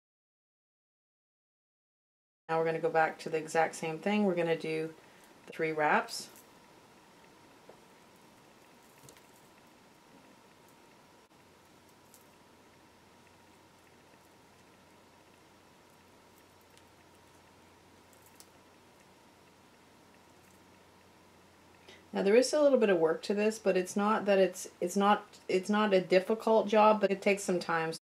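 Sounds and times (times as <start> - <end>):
steady low hum: 2.5 - 28.0
wire being wrapped by hand: 15.8 - 19.1.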